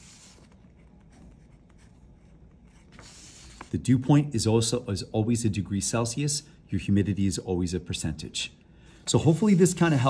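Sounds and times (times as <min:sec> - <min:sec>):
pen scratching on paper: 0:00.0 - 0:03.8.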